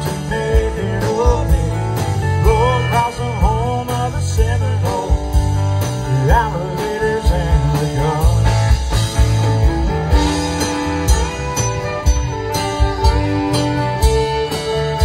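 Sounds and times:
live country band playing: 0.0s - 15.0s.

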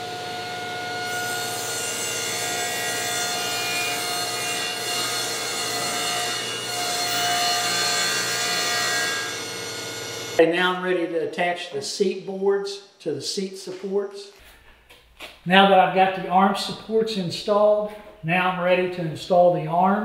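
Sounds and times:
table saw motor whine: 0.0s - 10.4s
saw blade cutting wood: 0.3s - 10.4s.

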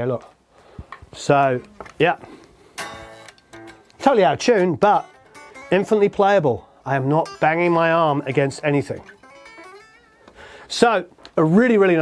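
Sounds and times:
electric guitar strummed: 2.8s - 6.3s, 7.0s - 10.7s.

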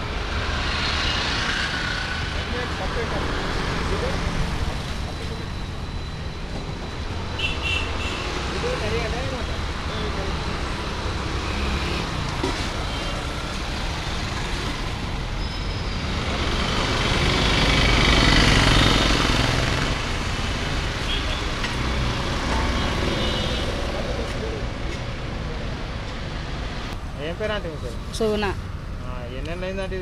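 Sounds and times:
road traffic passing: 0.0s - 30.0s
heavy vehicle passing: 8.2s - 21.0s.

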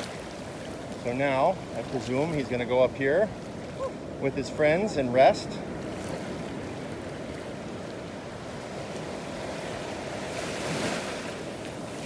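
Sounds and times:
small waves lapping on beach: 0.0s - 12.0s.

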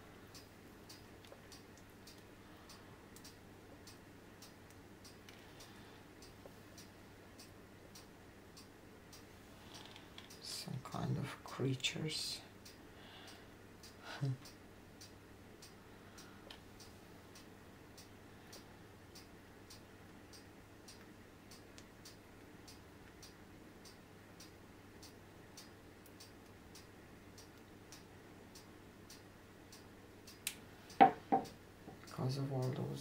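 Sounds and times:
faint ticking: 0.0s - 11.0s, 12.4s - 33.0s
low steady hum: 0.0s - 33.0s.

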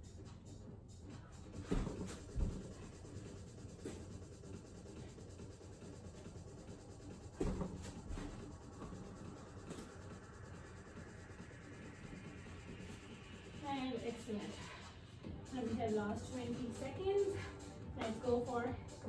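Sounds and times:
feet thudding on exercise mat: 1.6s - 4.2s, 7.2s - 10.1s.

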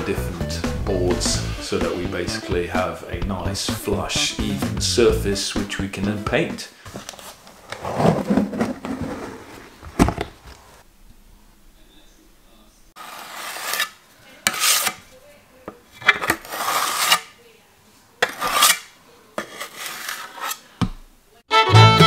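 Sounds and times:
knife scraping plaster on metal: 13.0s - 15.1s, 16.0s - 17.4s, 18.2s - 20.8s.

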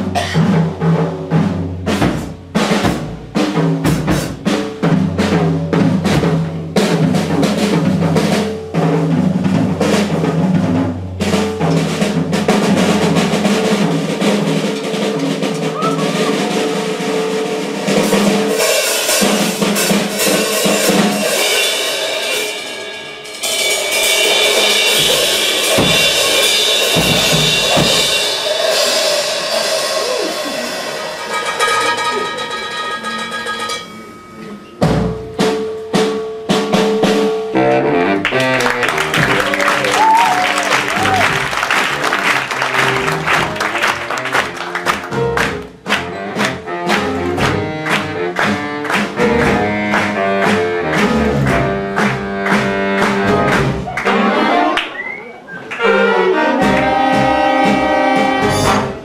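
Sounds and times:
drum kit solo: 0.0s - 59.0s.

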